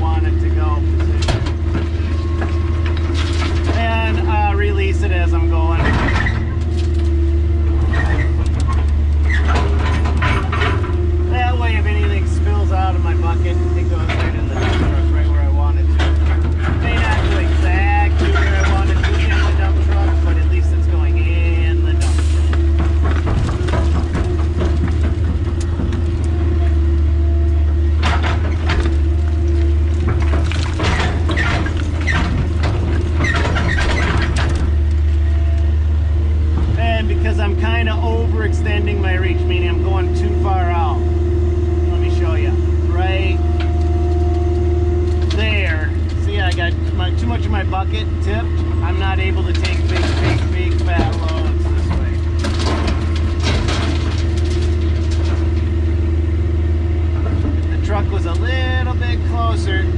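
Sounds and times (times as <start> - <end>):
excavator diesel engine droning: 0.0 - 59.9
bucket digging through rock: 28.4 - 34.8.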